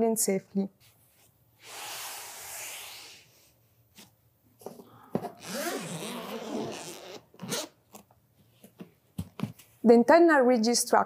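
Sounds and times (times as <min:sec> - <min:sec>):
zipper unzipping: 0:05.4 - 0:07.8.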